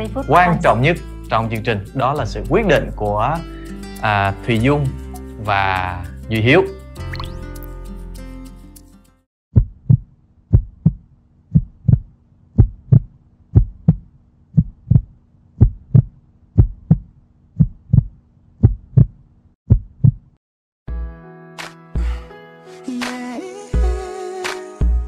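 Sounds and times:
heartbeat double thump: 0:09.6 - 0:20.3.

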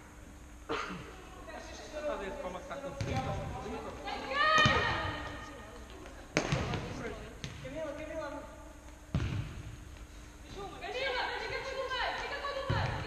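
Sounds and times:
ball thudding on indoor court: 0:02.9 - 0:03.8, 0:04.4 - 0:05.4, 0:06.3 - 0:08.0, 0:09.1 - 0:09.8, 0:12.6 - 0:13.0.

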